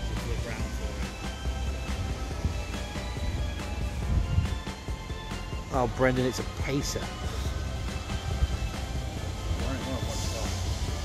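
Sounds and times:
background music: 0.0 - 11.0
diesel railbus rumbling: 6.6 - 11.0.

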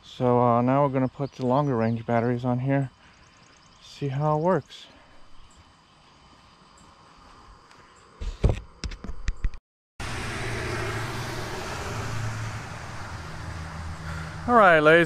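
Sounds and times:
microphone handling thumps: 8.2 - 9.6
low engine hum: 10.0 - 15.0
road traffic noise: 10.0 - 15.0.

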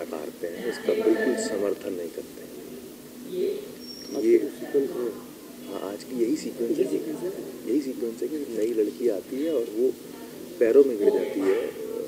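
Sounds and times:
man speaking: 0.0 - 2.7, 4.1 - 12.0.

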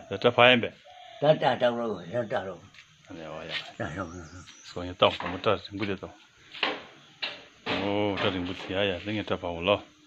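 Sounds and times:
man talking: 0.0 - 6.2, 7.7 - 9.9.

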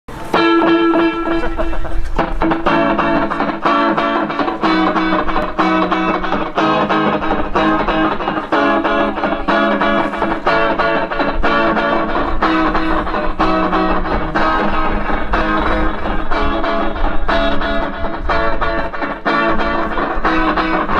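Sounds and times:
electric guitar picked notes: 0.1 - 20.9
live rock band playing: 0.1 - 20.9.

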